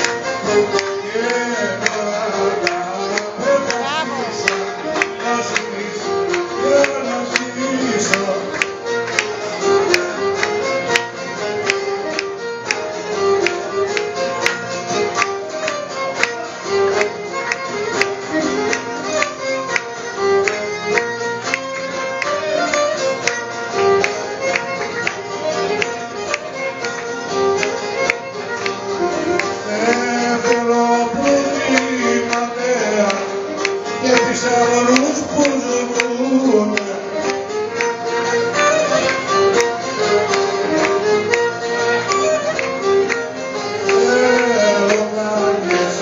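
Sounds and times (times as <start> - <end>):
hands clapping to the beat: 0.0 - 46.0
plucked lute: 0.0 - 46.0
violin playing folk dance tune: 0.0 - 46.0.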